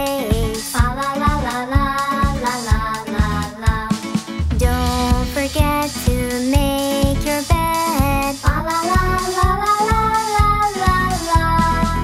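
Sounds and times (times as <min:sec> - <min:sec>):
child singing over a beat: 0:00.0 - 0:12.0.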